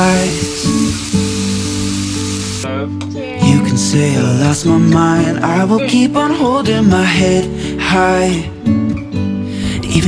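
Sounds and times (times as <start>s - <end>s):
steaks sizzling in a frying pan: 0.0s - 2.6s
song with held chords: 0.0s - 10.0s.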